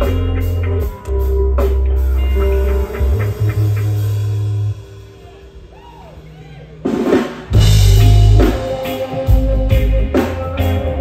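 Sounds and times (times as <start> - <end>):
reggae band playing: 0.0 - 11.0.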